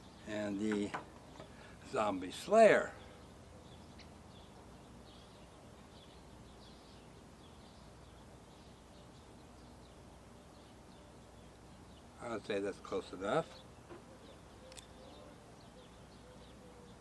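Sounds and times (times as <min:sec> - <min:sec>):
light click: 0:14.7 - 0:14.9.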